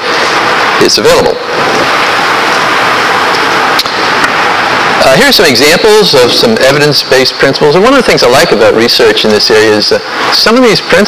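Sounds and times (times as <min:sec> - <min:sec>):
loud steady hiss: 0:00.0 - 0:11.0.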